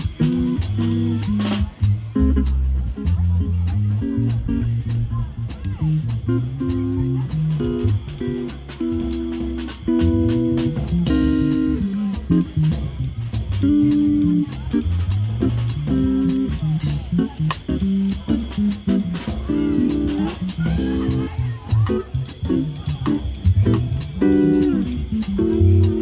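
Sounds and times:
drum kit cymbal beat: 0:00.0 - 0:26.0
electric bass: 0:00.0 - 0:26.0.

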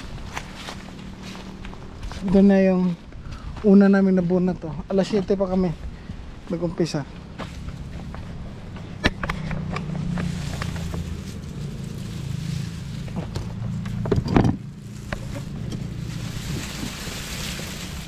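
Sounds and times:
low steady rumble: 0:05.6 - 0:18.0.

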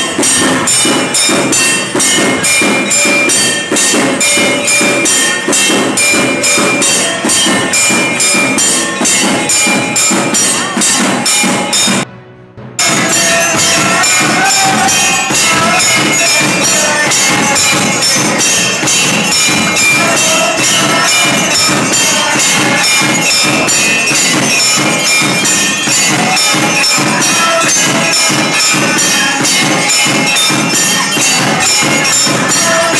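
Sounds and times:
jingling percussion and bells: 0:00.0 - 0:12.1, 0:12.8 - 0:32.9
devotional singing: 0:12.8 - 0:32.9.

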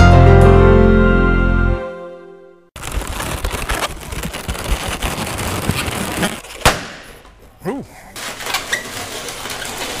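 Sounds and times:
theme music: 0:00.0 - 0:02.6
balloons being twisted: 0:02.8 - 0:06.8.

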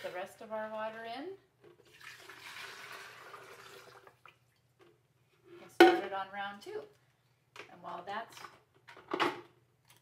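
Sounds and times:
water pouring from a pitcher: 0:01.8 - 0:04.5.

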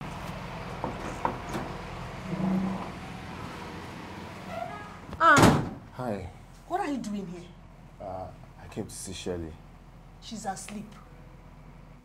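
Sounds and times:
door thud: 0:05.2 - 0:05.8.

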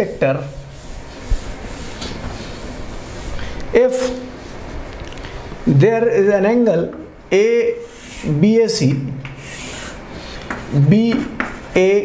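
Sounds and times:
person speaking: 0:00.0 - 0:00.8, 0:03.6 - 0:04.6, 0:05.6 - 0:12.0
chalk scraping on blackboard: 0:07.8 - 0:08.3, 0:09.3 - 0:11.7.

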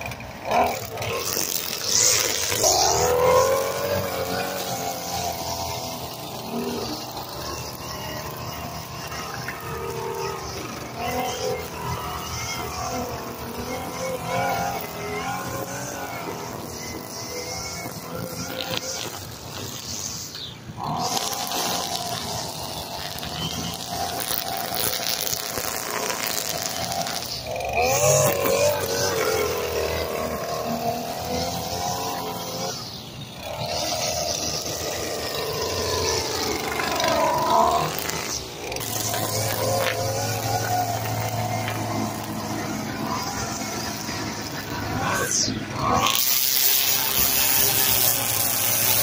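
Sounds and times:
string trimmer cutting grass: 0:00.0 - 0:49.0.

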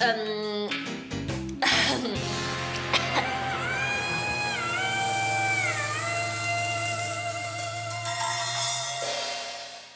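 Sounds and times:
held notes gliding down: 0:02.2 - 0:09.0
low drone: 0:02.2 - 0:09.4.

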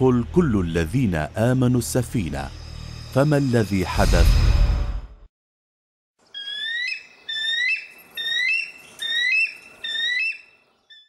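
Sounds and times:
bird whistling rising notes: 0:06.4 - 0:11.0.

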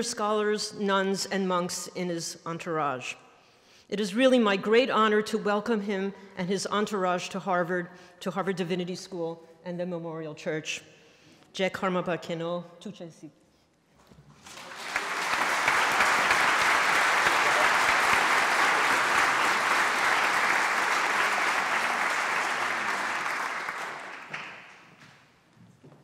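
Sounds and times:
audience applauding: 0:14.4 - 0:25.1.

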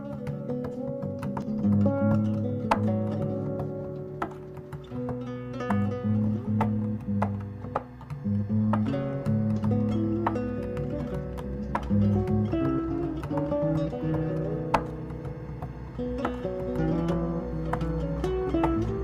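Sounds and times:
fretless guitar playing: 0:00.0 - 0:19.0.

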